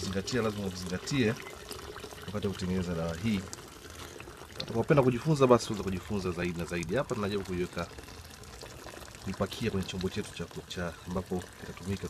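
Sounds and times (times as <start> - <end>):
liquid pouring: 0.0 - 12.0.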